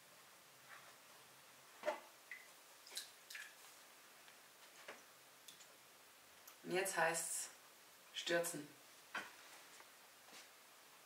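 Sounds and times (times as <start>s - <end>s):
water dripping into a plastic tub: 1.8s - 3.7s, 4.3s - 5.8s.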